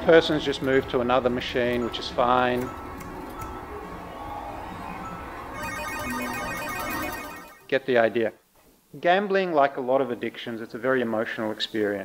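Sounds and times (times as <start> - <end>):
gaming machine jingle of beeps: 5.5 - 7.6
steady electronic tone: 5.5 - 7.6.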